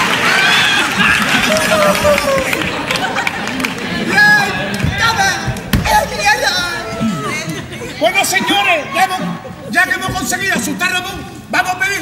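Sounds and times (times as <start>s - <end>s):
faint crowd noise: 0.0s - 12.0s
men calling out: 4.0s - 10.6s.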